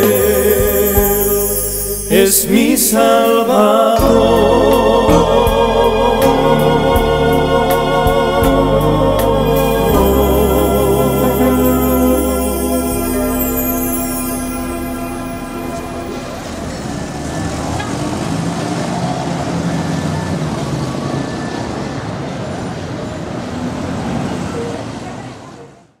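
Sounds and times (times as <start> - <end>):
organ chord: 0.0 - 17.8
traffic noise: 0.0 - 26.0
crowd of people talking: 9.4 - 26.0.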